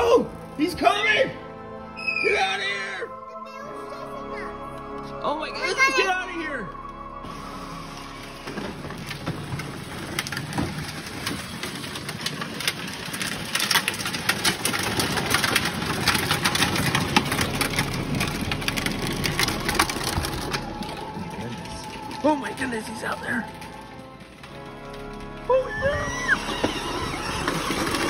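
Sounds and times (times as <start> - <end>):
plastic toy car wheels crunching: 7.3 - 28.0.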